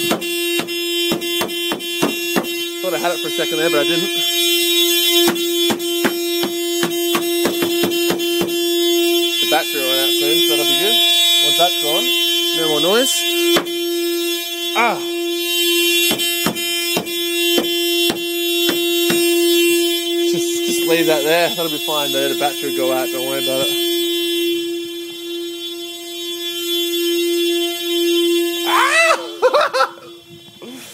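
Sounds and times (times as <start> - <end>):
car horn steady tone: 0.0 - 30.9
person wailing: 28.7 - 29.4.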